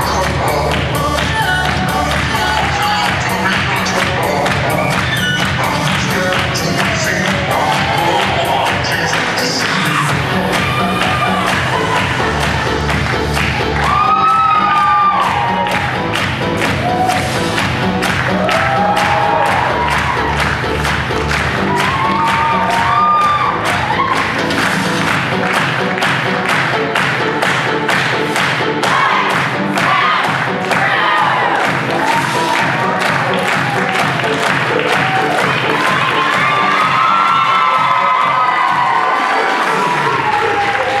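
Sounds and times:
music with a steady beat: 0.0 - 41.0
audience cheering and whooping: 10.0 - 12.7, 13.4 - 17.6, 18.2 - 24.7, 28.8 - 41.0.

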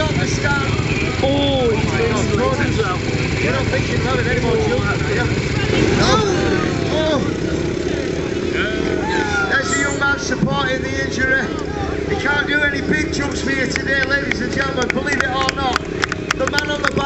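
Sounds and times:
dirt bike engines: 0.0 - 17.0
voices: 0.0 - 17.0.

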